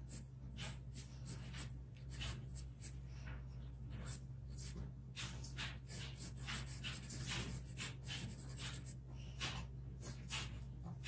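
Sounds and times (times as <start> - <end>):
pencil scratching on paper: 0.0 - 3.0, 5.5 - 10.6.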